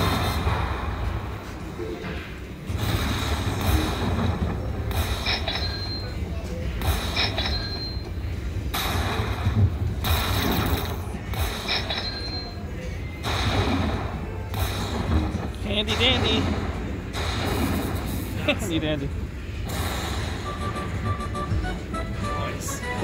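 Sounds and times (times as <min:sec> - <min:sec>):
slot machine crashes: 0:19.7 - 0:23.0.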